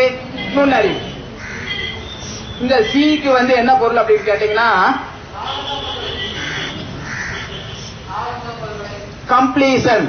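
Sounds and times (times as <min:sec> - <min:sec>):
crows cawing: 0:01.4 - 0:02.0, 0:04.1 - 0:04.6, 0:06.4 - 0:07.7.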